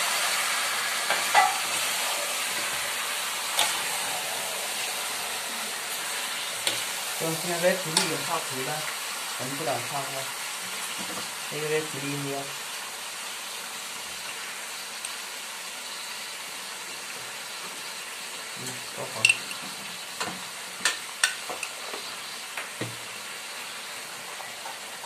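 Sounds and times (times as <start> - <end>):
food sizzling in a wok: 0.0 - 25.0
utensils clinking on wok: 1.1 - 1.8, 19.1 - 19.6.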